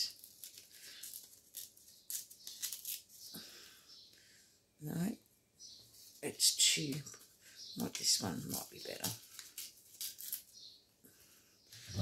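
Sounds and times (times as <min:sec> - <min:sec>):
paper stickers crinkling: 0:00.0 - 0:03.3, 0:08.0 - 0:10.6.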